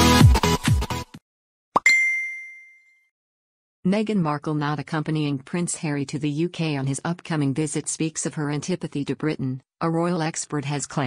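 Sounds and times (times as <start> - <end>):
bright ding chime: 1.8 - 3.1.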